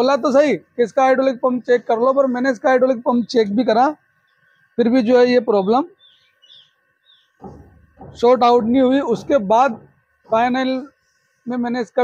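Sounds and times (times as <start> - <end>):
faint bird chirps: 1.6 - 7.6.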